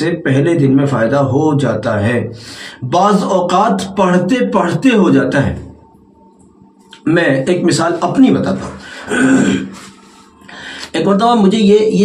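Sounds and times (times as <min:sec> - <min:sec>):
soft intake of breath: 0:02.4 - 0:02.8, 0:08.8 - 0:11.0
man clearing his throat: 0:09.0 - 0:09.8.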